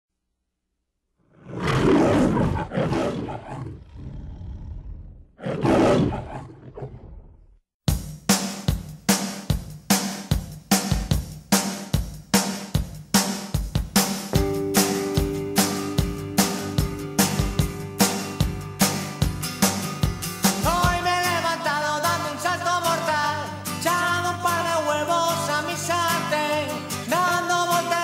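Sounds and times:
lion roar: 1.3s - 7.6s
music with steady drum beat: 7.8s - 28.0s.

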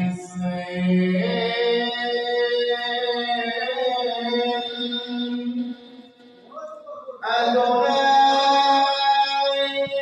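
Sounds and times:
man singing through loudspeakers: 0.0s - 6.6s, 7.2s - 10.0s.

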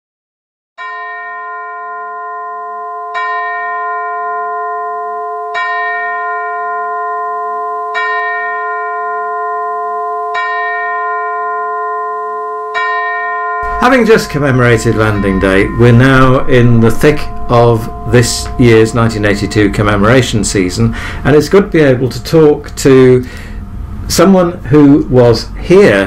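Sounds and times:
bell tolling: 0.8s - 25.0s
man speaking: 13.6s - 23.4s, 24.1s - 26.0s.

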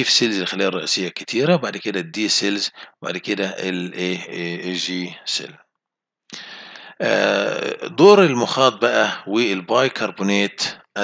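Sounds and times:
man speaking: 0.0s - 5.6s, 6.4s - 11.0s
man breathy throat noise: 6.3s - 7.0s.

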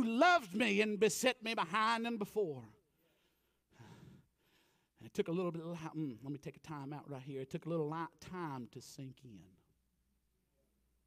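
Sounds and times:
man breathing into microphone: 3.0s - 5.0s.

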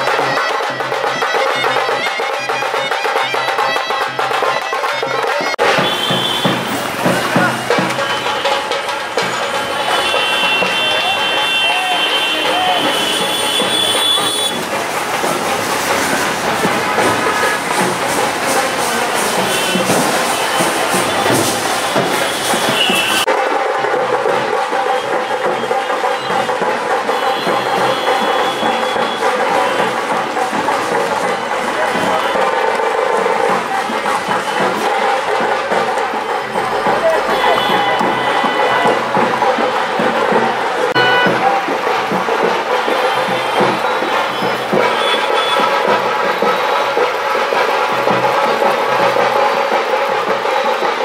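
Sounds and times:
band music: 0.0s - 51.0s
crowd voices: 0.0s - 51.0s
passing traffic: 0.0s - 51.0s.

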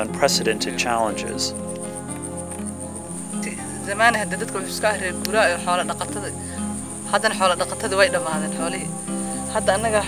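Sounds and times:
high-pitched insect trill: 0.0s - 10.0s
woman speaking: 3.4s - 10.0s.

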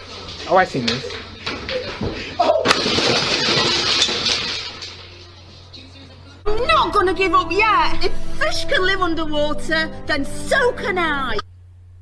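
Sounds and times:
glass shattering: 2.6s - 5.7s.

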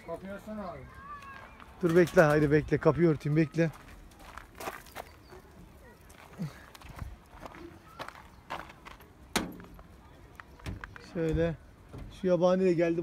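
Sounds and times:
footsteps on gravel: 0.3s - 11.1s.

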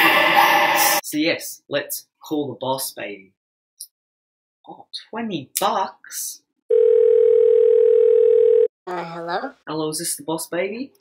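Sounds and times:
telephone ringback tone: 6.7s - 8.7s.

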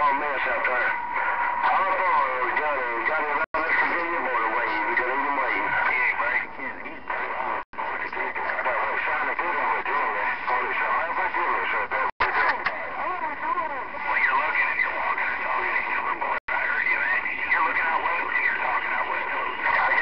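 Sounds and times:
garbled radio voices: 0.0s - 20.0s.

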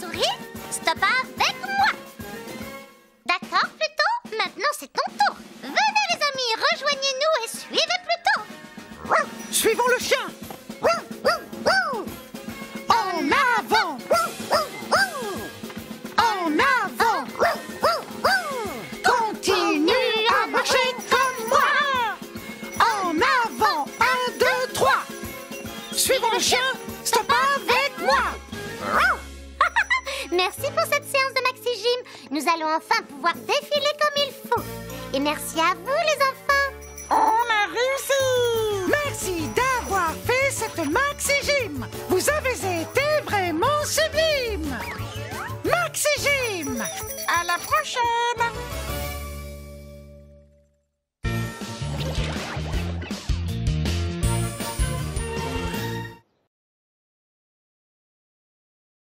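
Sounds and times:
light background music: 0.0s - 50.4s
cartoon dog yipping barks: 9.0s - 10.1s, 10.8s - 12.1s, 13.3s - 15.5s, 16.6s - 19.2s, 27.2s - 29.3s.

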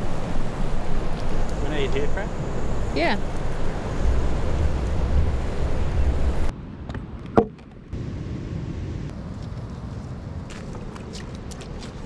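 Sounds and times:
wind buffeting microphone: 0.0s - 7.3s.

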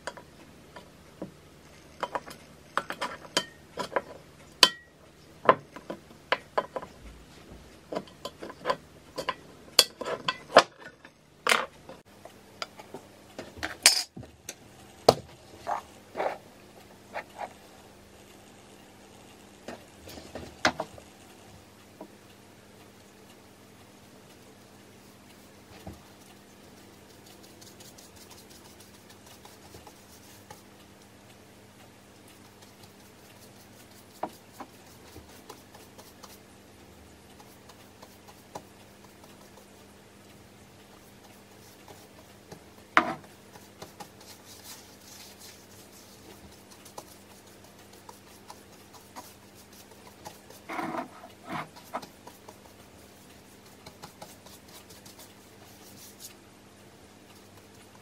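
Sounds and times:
paintbrush dabbing and brushing: 25.0s - 30.7s, 32.2s - 36.5s, 37.4s - 39.9s, 40.9s - 56.4s
brush ticking on paint tin: 26.1s - 31.1s, 32.2s - 36.5s, 37.2s - 40.0s, 40.8s - 56.3s.

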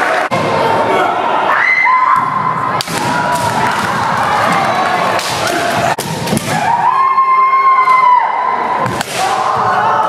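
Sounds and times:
gym crowd noise: 0.0s - 10.0s.

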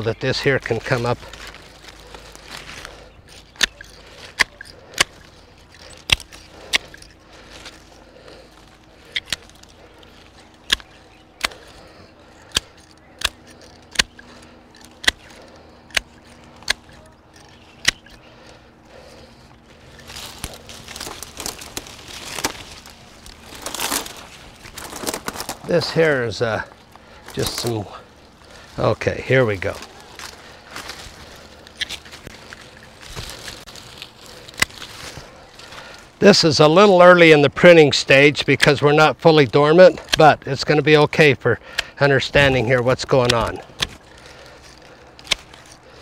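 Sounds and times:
leaves and canes rustling: 0.0s - 46.0s
pruning shears clicking: 0.0s - 46.0s.

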